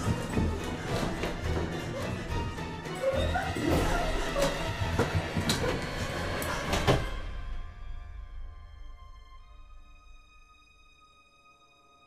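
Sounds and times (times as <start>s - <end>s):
tense horror film score: 0.0s - 12.0s
whimpering cries: 1.8s - 4.9s.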